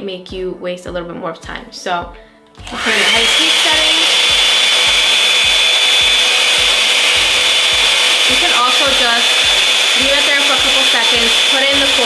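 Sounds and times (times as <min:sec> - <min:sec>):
high motor whine: 0:02.6 - 0:12.0
hot-air styling wand blowing: 0:02.6 - 0:12.0.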